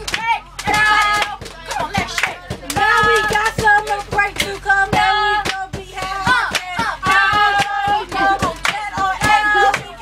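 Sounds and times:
girls singing a chant: 0.0 - 10.0
rhythmic hand clapping: 0.0 - 10.0.

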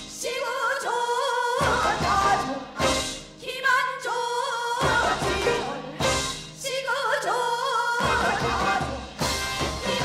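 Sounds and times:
band playing: 1.6 - 3.4, 4.8 - 6.6, 8.0 - 10.0
woman singing into a microphone: 3.4 - 9.0.

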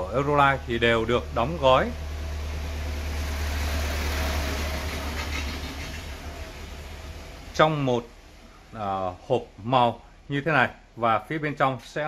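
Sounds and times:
low rumbling with hiss: 0.0 - 12.0.

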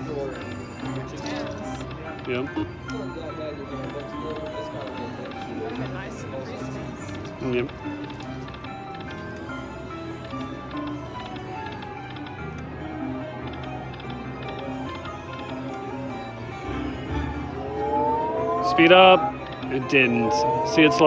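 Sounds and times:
slot machine jingles: 0.0 - 12.4
casino background din: 0.0 - 21.0
rising electronic tones: 16.6 - 21.0.

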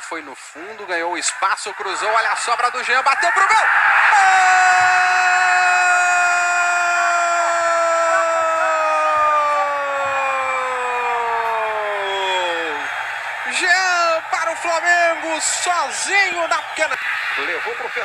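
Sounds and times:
commentator speaking: 0.0 - 3.7, 13.4 - 18.0
commentator's long goal shout: 3.2 - 12.9.

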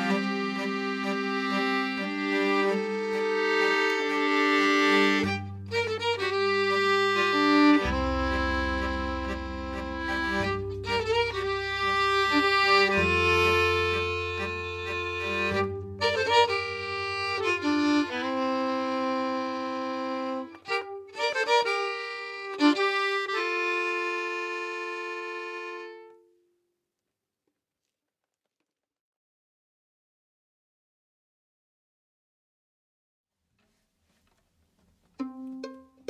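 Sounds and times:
low bass line: 0.0 - 21.7
fiddle: 0.0 - 26.2, 35.2 - 36.0
accordion: 0.0 - 26.3.

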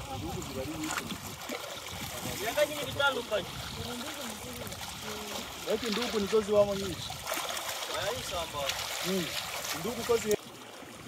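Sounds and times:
water splashing and lapping: 0.0 - 11.0.

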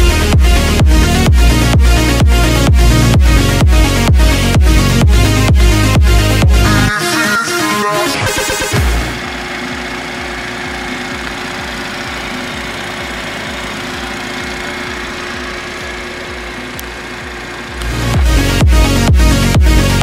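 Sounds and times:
car engine idling: 0.0 - 20.0
music: 0.0 - 20.0.

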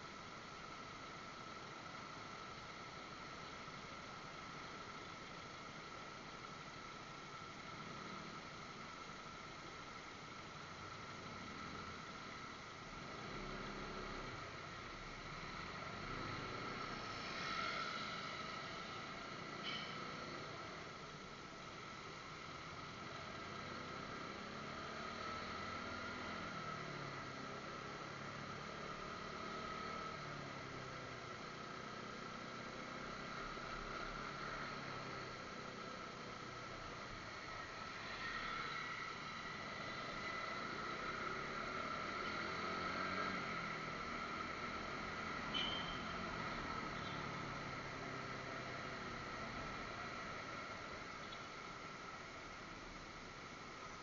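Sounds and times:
road noise: 0.0 - 54.0
motorcycle engine: 22.8 - 51.4.

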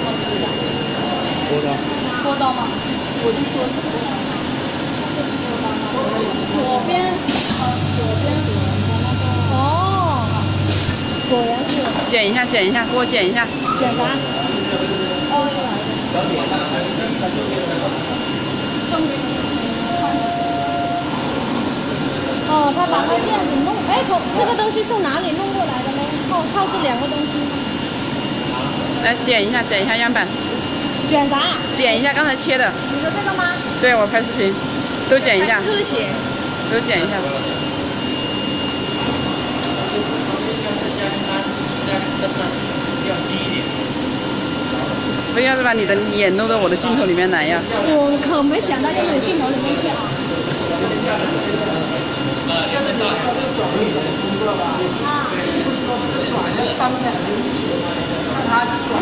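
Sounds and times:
cutting table machine hum: 0.0 - 59.0
high steady whine: 0.0 - 59.0.

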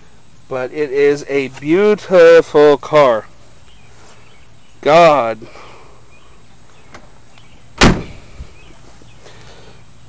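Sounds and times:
car door slamming: 7.8 - 8.3.

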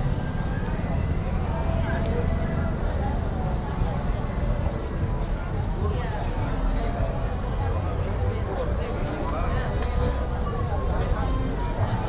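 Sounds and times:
people chattering: 0.0 - 12.0
road traffic rumble: 0.0 - 12.0.

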